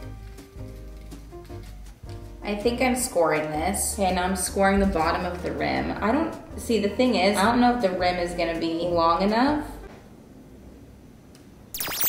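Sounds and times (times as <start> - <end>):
electronic laser zapping: 11.8 - 12.0.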